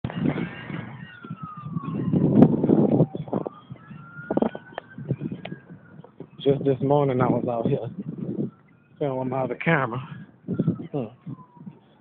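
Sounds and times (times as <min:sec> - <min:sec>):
siren wailing: 0:00.1 - 0:12.0.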